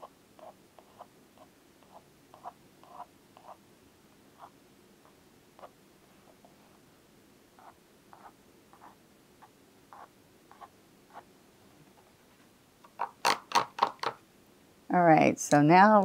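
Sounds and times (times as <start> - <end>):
paintbrush ticking on paper: 0.4 - 3.6.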